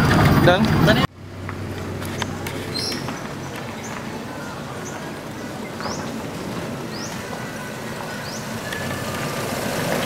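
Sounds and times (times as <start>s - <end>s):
jeep engine running: 0.0s - 10.0s.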